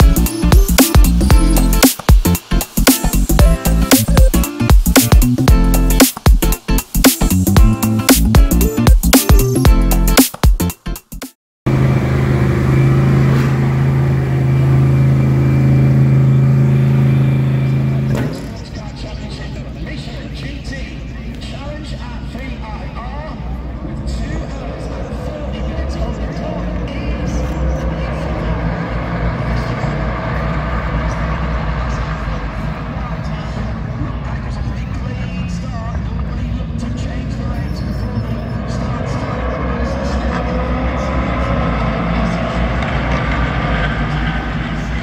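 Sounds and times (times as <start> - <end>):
steady low rumble: 11.7 - 37.6
race car engines: 11.7 - 45.0
people talking: 17.7 - 45.0
spectators chattering: 18.4 - 43.5.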